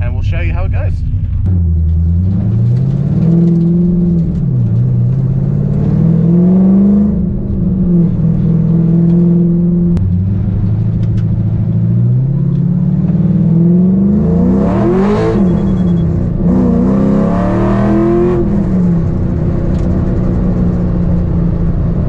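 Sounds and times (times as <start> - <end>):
car engine accelerating: 0.0 - 22.0.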